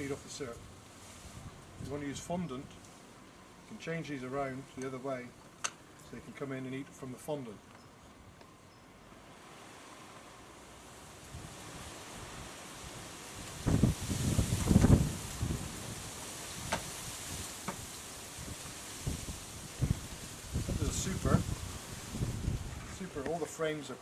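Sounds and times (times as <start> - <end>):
wind buffeting microphone: 11.3 - 23.3.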